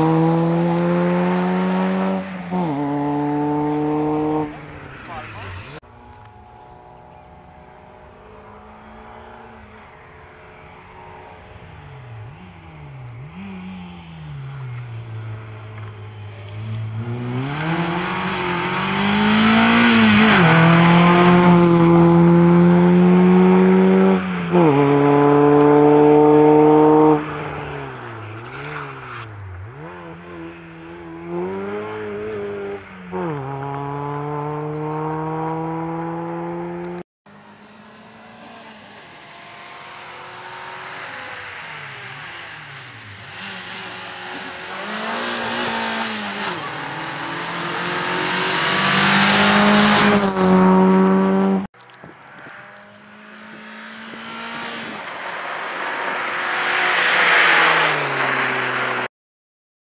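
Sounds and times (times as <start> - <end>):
rally car engine revving: 0.0 - 37.0, 37.6 - 59.1.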